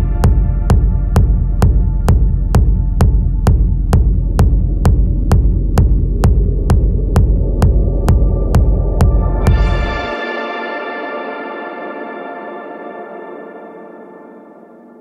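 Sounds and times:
techno beat: 0.0s - 10.3s
heavy bass drone: 0.0s - 12.4s
held synthesizer chord: 8.6s - 15.0s.

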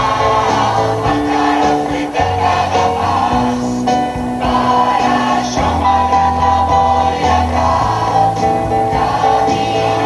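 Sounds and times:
live band keyboard and guitar: 0.0s - 10.0s
mixed choir singing rock song: 0.0s - 10.0s.

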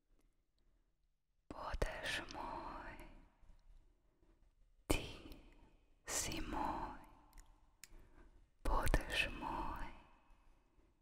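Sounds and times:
person whispering: 1.5s - 3.4s, 4.9s - 7.4s, 8.6s - 10.4s.

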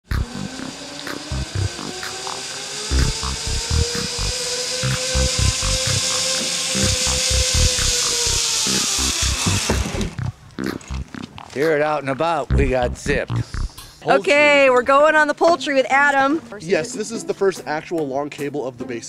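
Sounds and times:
low thumps: 0.0s - 2.1s, 2.9s - 6.2s, 6.8s - 11.4s, 12.5s - 14.0s
zip line pulleys whining on cable: 0.3s - 10.2s.

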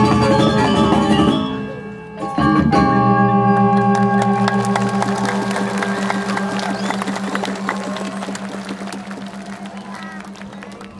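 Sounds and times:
audience applauding: 3.6s - 10.9s.

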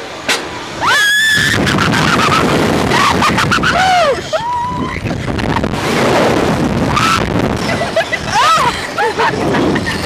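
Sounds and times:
wind rushing over microphone: 0.5s - 10.0s
riders crying out: 6.9s - 10.0s.

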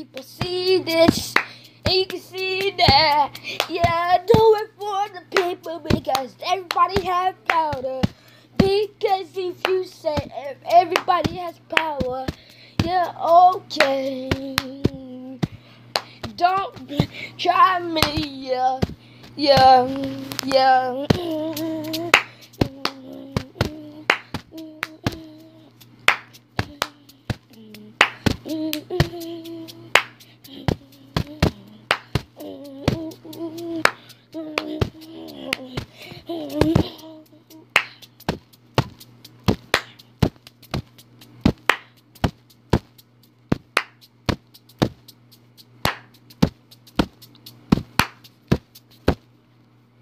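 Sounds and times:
steady low hum: 0.0s - 50.0s
hand claps: 0.2s - 4.6s, 5.3s - 8.8s, 9.6s - 17.1s, 18.0s - 49.2s
percussive beat of sharp clicks: 21.1s - 49.2s.

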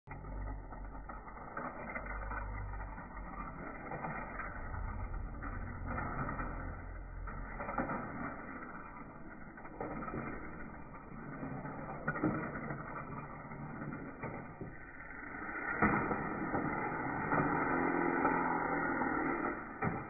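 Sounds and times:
low rumble: 0.0s - 20.0s
toy car motor whirring: 0.1s - 20.0s
wheels rattling over plastic track: 0.1s - 20.0s.

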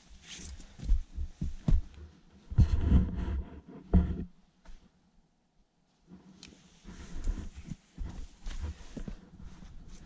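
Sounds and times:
wind and handling rumble on microphone: 0.8s - 4.4s
person breathing hard: 6.8s - 10.0s.

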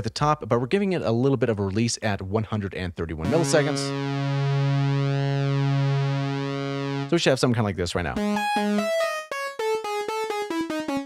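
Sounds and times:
synthesizer lead notes: 3.2s - 7.2s, 8.2s - 11.0s.

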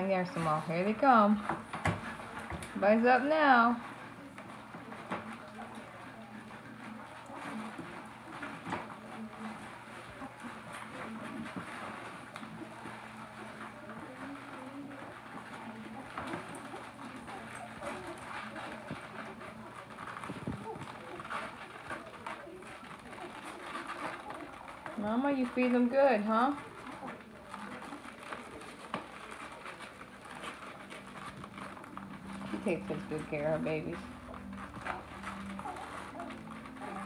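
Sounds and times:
dogs whimpering and cooing: 1.4s - 37.0s.

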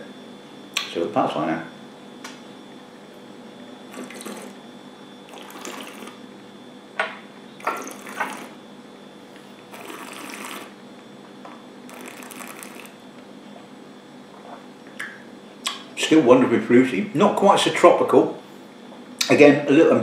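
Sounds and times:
person slurping liquid: 3.9s - 4.6s, 5.3s - 6.2s, 9.7s - 10.8s, 11.9s - 13.0s.

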